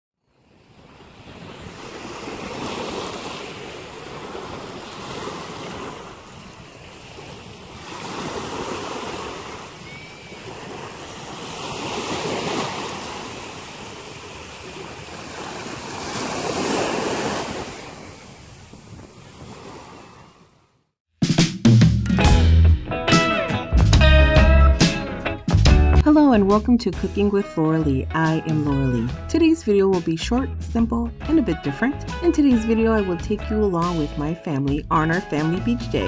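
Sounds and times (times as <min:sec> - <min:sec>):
waves breaking on a beach: 0:00.3 - 0:20.8
wind buffeting microphone: 0:17.3 - 0:20.0.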